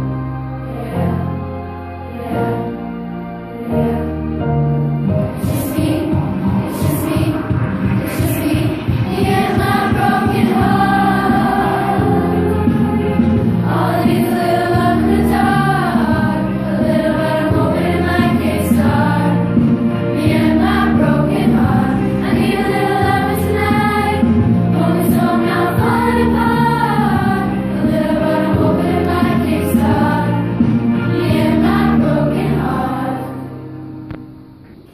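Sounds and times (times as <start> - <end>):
girls choir singing: 0.0 - 33.8
low instrumental accompaniment: 0.0 - 34.9.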